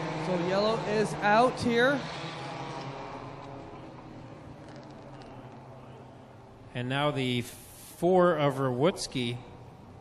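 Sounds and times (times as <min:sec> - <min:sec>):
race car engines humming: 0:00.0 - 0:10.0.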